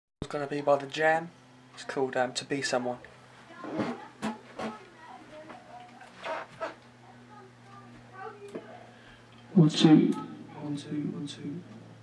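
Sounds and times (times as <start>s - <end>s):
low electrical hum: 0.2s - 12.0s.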